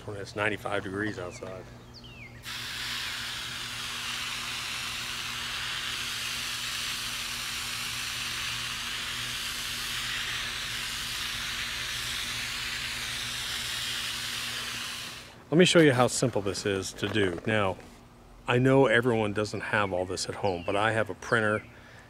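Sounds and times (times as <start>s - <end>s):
hose nozzle spraying water mist: 2.4s - 15.4s.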